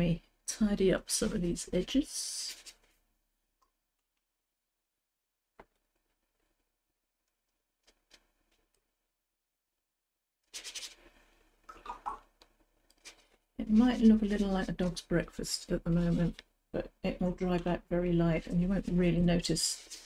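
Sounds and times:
paintbrush scratching on paper: 0:01.1 - 0:02.9, 0:13.0 - 0:16.4.

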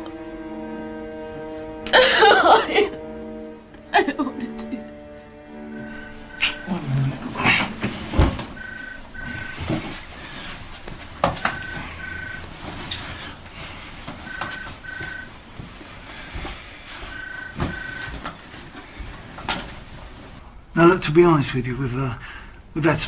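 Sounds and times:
rustling: 0:05.0 - 0:20.6
telephone ringing: 0:05.6 - 0:06.8, 0:07.7 - 0:10.2, 0:11.2 - 0:12.7, 0:14.2 - 0:15.4, 0:17.0 - 0:18.5.

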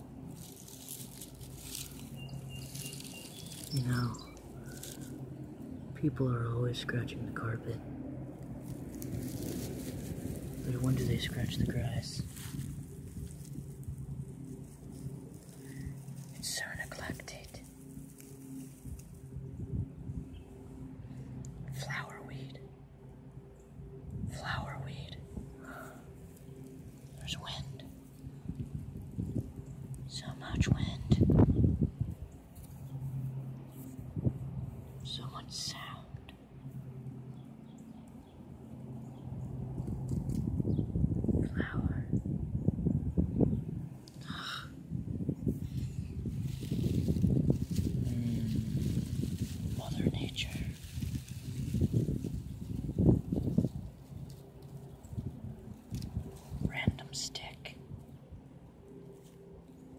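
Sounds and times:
fingers scratching through grass: 0:00.0 - 0:05.8, 0:08.3 - 0:20.4, 0:45.4 - 0:57.6
steady low hum: 0:00.0 - 0:59.9
wind buffeting microphone: 0:18.8 - 0:21.0, 0:28.3 - 0:32.7, 0:33.6 - 0:35.2, 0:39.1 - 0:57.0.

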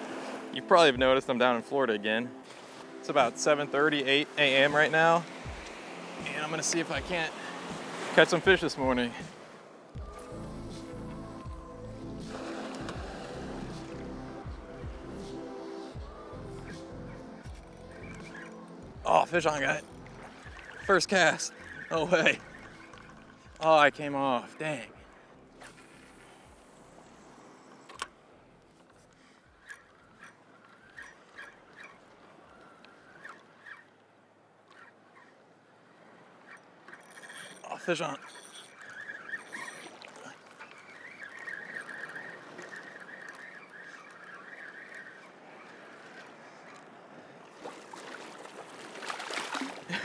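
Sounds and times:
water splashing: 0:00.0 - 0:50.0
fishing reel drag buzzing: 0:16.0 - 0:18.8, 0:19.4 - 0:23.6, 0:28.8 - 0:34.0, 0:34.6 - 0:35.4, 0:36.0 - 0:47.2
fishing reel clicks: 0:29.1 - 0:32.0, 0:36.4 - 0:46.9.

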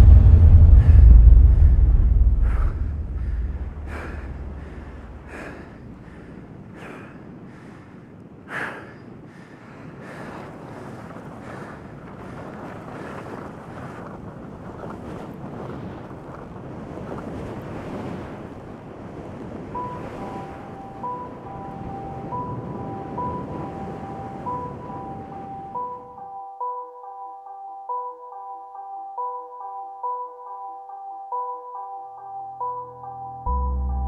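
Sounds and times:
wind-like rushing noise: 0:00.0 - 0:08.5
melody of short high notes: 0:25.8 - 0:34.0.

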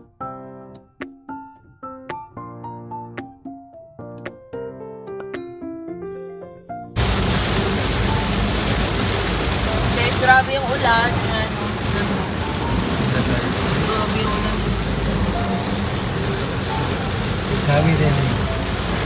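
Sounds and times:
heavy rain on a car: 0:07.0 - 0:19.0
tyres hissing on wet road: 0:07.0 - 0:19.0.

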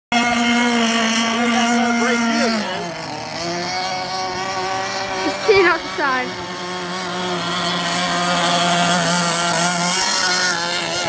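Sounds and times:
radio-controlled boat motor running: 0:00.1 - 0:11.0.

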